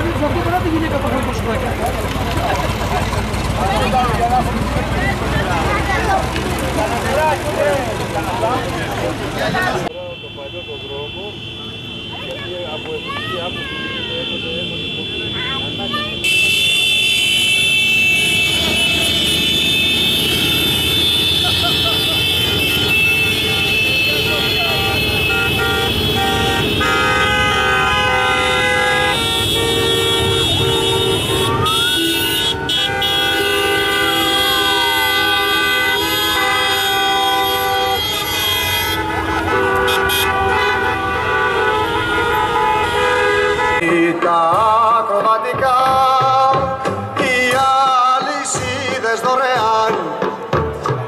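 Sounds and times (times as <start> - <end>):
vehicle horns blaring: 0.0 - 44.9
engines rumbling: 0.0 - 51.0
horn sliding in pitch: 22.7 - 43.8.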